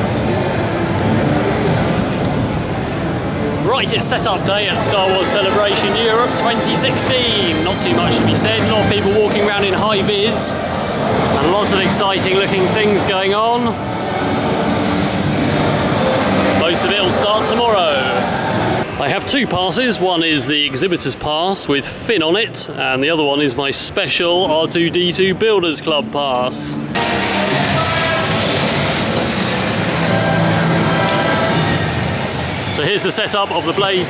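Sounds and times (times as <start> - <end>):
broad hall rumble: 0.0 - 34.0.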